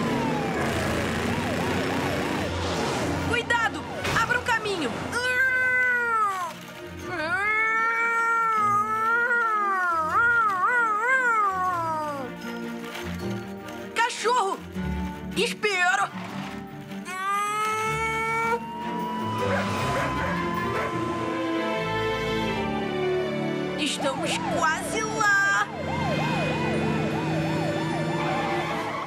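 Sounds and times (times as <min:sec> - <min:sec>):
background music: 0:00.0 - 0:29.0
child imitating a siren: 0:07.8 - 0:12.3, 0:17.8 - 0:21.7.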